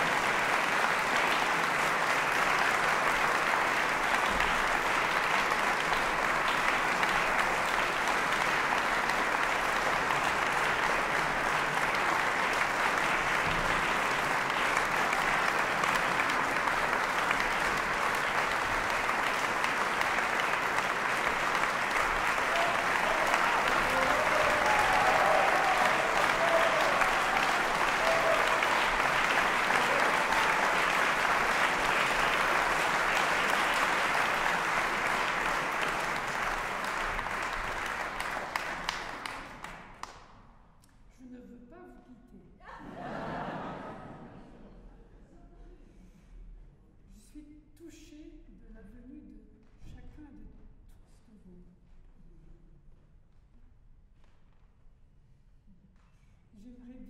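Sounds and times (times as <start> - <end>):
large audience applauding: 0.0 - 40.4.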